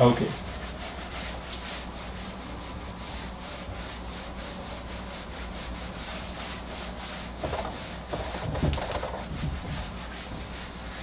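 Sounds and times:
eraser rubbing on whiteboard: 0:00.0 - 0:11.0.

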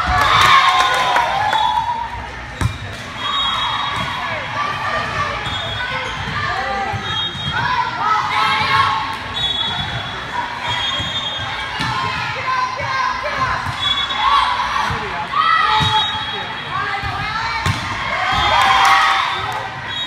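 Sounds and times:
players and spectators shouting: 0:03.0 - 0:20.0.

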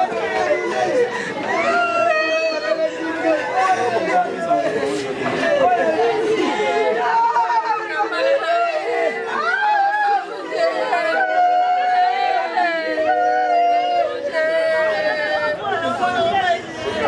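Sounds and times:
women wailing: 0:00.0 - 0:04.5, 0:05.4 - 0:16.0
women talking and crying: 0:00.0 - 0:17.0.

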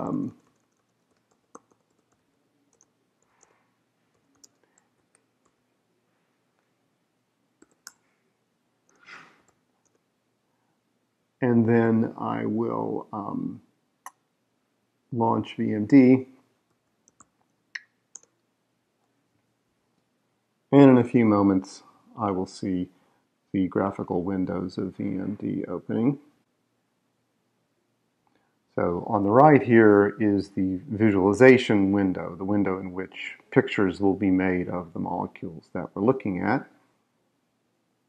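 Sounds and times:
keyboard keystrokes: 0:00.3 - 0:02.9
computer keyboard keystrokes: 0:00.3 - 0:05.6, 0:07.6 - 0:08.0, 0:18.1 - 0:18.4.

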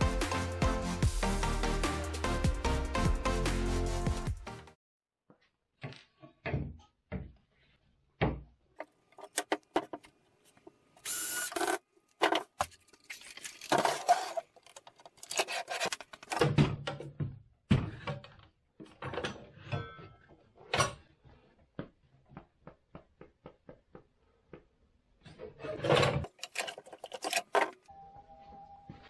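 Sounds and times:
wood and tools knocking and scraping: 0:05.3 - 0:10.9, 0:11.6 - 0:27.9.

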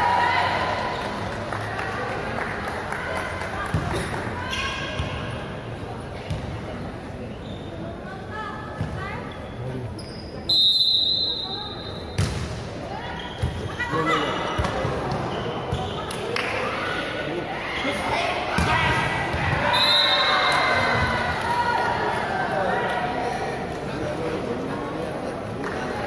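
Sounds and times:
referee's whistle blast: 0:10.5 - 0:12.0, 0:19.7 - 0:20.6.

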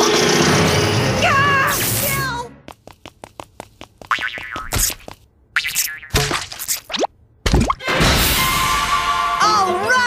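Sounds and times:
music: 0:07.8 - 0:10.0.

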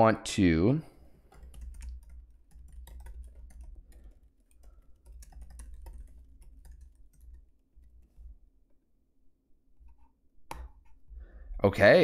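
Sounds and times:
laptop keyboard typing: 0:01.3 - 0:08.2.

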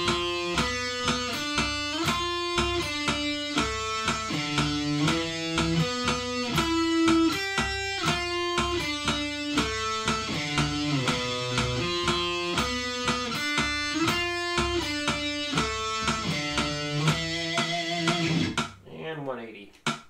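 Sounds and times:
electric guitar slow melody: 0:00.0 - 0:18.6
metronome clicking: 0:00.0 - 0:20.0.

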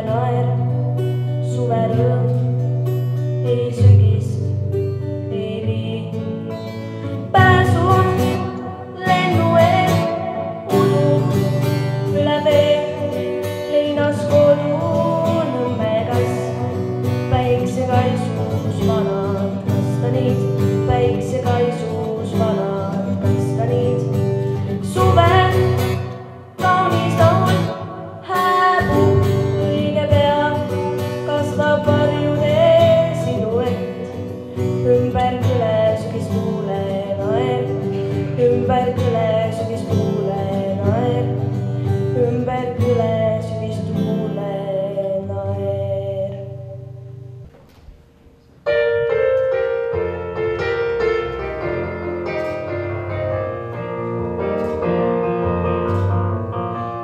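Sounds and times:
girl singing into microphone: 0:00.0 - 0:47.0
instrumental accompaniment: 0:46.9 - 0:57.0.

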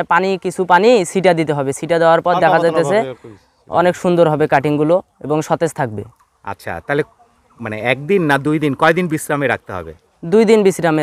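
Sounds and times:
man speaking: 0:02.3 - 0:03.4.

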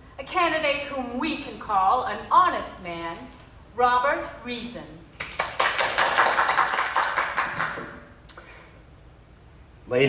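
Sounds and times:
people applauding: 0:05.2 - 0:08.1.

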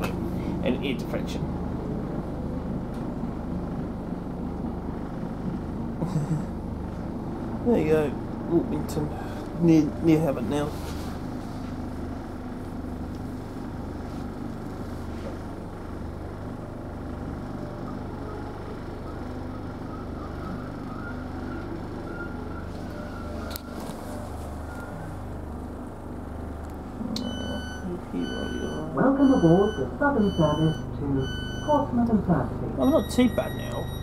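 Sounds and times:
faint wavering whine: 0:07.8 - 0:26.0, 0:27.1 - 0:32.1, 0:32.8 - 0:34.0
repeated electronic beep: 0:27.2 - 0:31.8, 0:32.8 - 0:34.0.

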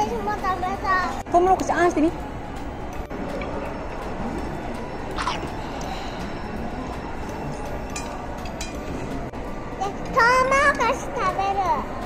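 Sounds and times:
busy food court din: 0:00.0 - 0:12.0.

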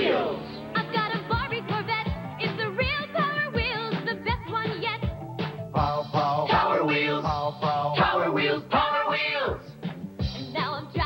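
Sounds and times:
drum beat: 0:09.5 - 0:11.0.

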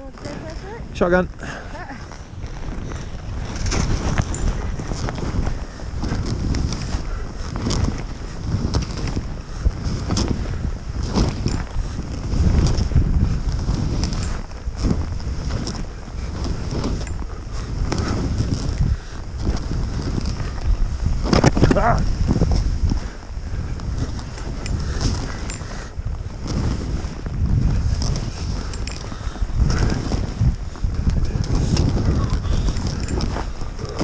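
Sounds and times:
wind buffeting microphone: 0:00.0 - 0:34.0
skis hissing through snow: 0:00.2 - 0:34.0.

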